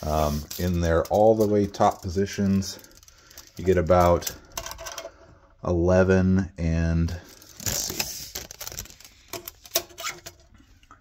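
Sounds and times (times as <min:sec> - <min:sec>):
handling rustle: 0:00.0 - 0:04.5.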